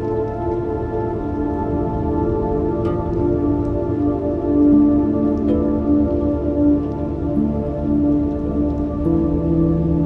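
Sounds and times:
slow ambient music: 0.0 - 10.0.

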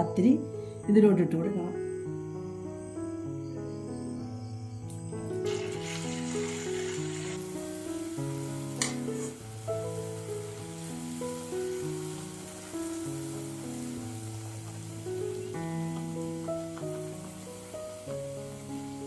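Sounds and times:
food sizzling in hot oil: 4.9 - 19.0.

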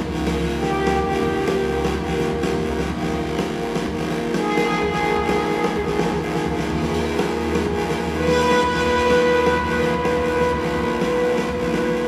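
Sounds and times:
synthesizer with orchestra: 0.0 - 12.0.

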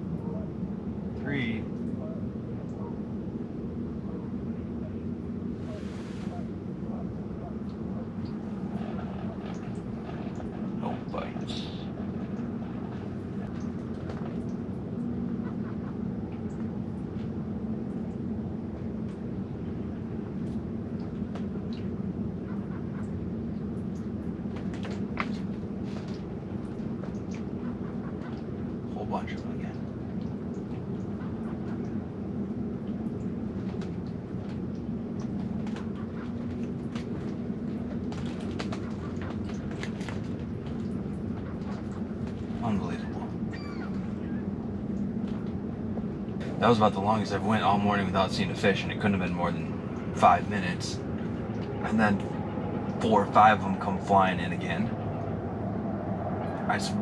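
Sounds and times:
steady low rumble: 0.0 - 57.0.

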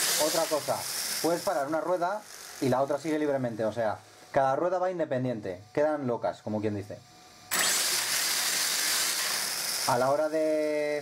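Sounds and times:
electric motor high whir: 0.0 - 2.8, 7.5 - 11.0.

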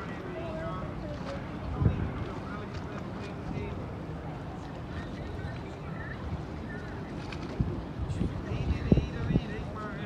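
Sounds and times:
boat engine rumble: 0.0 - 10.0
wind buffeting microphone: 0.0 - 10.0.

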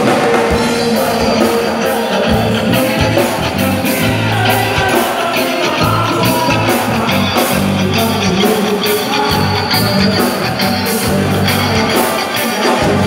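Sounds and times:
bass guitar: 0.0 - 13.0
drum kit with cymbals: 0.0 - 13.0
electric guitar: 0.0 - 13.0
person singing: 0.0 - 13.0.

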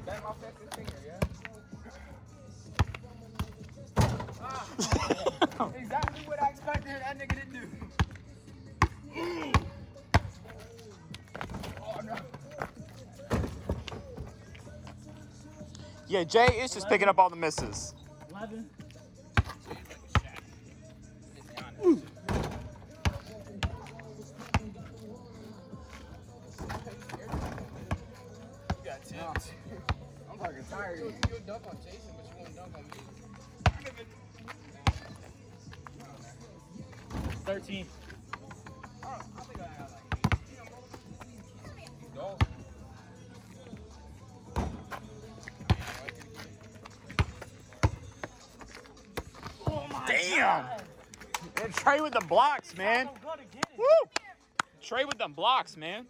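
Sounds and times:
basketball bouncing on asphalt: 0.2 - 1.7, 2.7 - 5.1, 5.8 - 15.6, 18.8 - 21.0, 22.3 - 25.2, 25.8 - 36.0, 36.8 - 43.0, 43.6 - 50.1.

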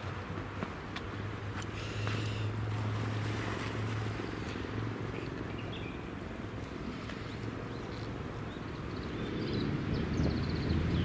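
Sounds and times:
wind and sea hiss: 1.2 - 11.0.

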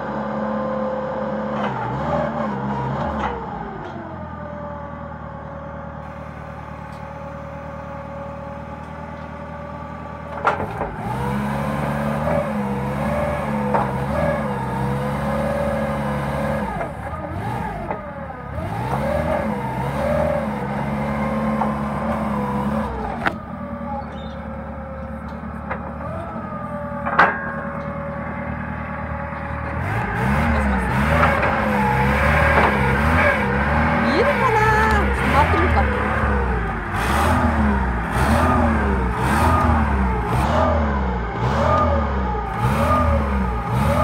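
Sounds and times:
forklift engine revving: 0.0 - 44.0.

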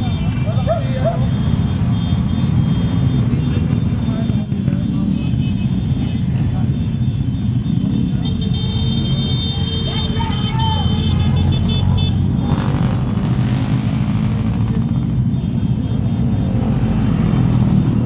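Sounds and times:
motorcycle engines rumbling: 0.0 - 18.0.

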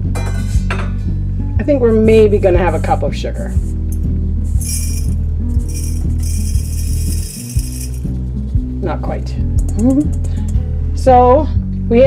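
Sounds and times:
background music: 0.0 - 12.0
sugar crystals poured through funnel: 4.5 - 8.1.

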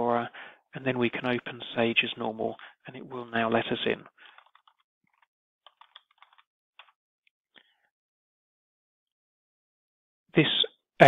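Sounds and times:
faint keyboard clicks: 4.3 - 7.0.

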